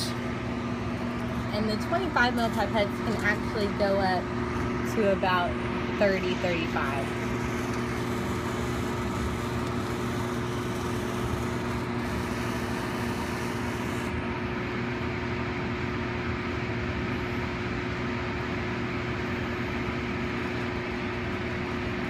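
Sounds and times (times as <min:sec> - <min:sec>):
blower humming steadily: 0:00.0 - 0:22.0
motorized pipette hissing: 0:06.2 - 0:14.2.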